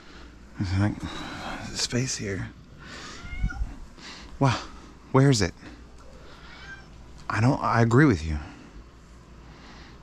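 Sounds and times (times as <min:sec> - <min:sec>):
cat meowing: 0:03.1 - 0:03.8, 0:06.0 - 0:07.0.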